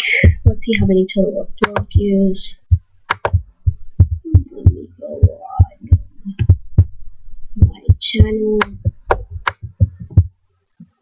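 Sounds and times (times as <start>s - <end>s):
sharp clicks: 1.6s - 2.1s, 3.0s - 3.5s, 8.5s - 10.3s
dull thumps and taps: 2.7s - 6.9s, 7.6s - 10.9s.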